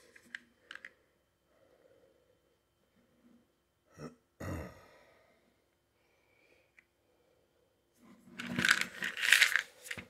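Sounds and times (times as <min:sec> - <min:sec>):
tablets rattling in plastic jar: 0:08.4 - 0:10.0.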